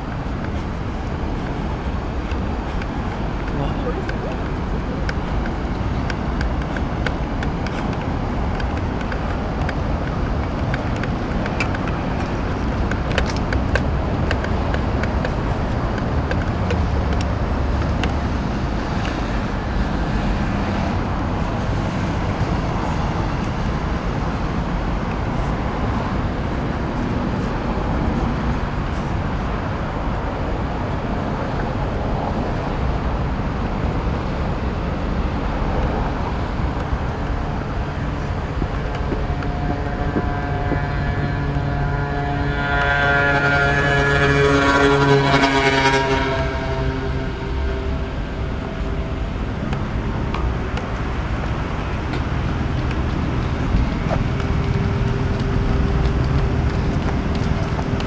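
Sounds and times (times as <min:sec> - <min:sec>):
road traffic: 0:00.0 - 0:58.0
vehicle engine humming past: 0:00.0 - 0:58.0.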